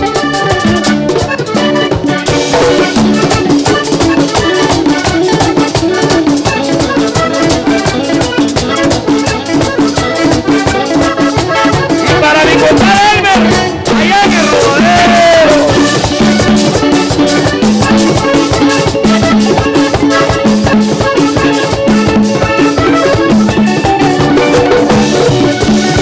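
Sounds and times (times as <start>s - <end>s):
button accordion melody: 0.0s - 26.0s
drums and bass: 0.0s - 26.0s
person singing: 12.0s - 16.1s.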